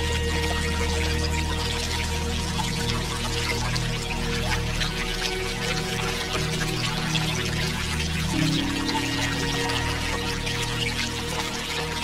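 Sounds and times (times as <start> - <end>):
ambient music of low notes: 0.0 - 12.0
stream water trickling: 0.0 - 12.0.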